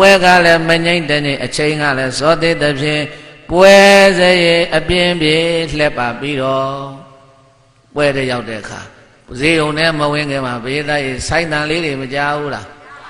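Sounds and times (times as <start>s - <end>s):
man chanting: 0.0s - 7.3s.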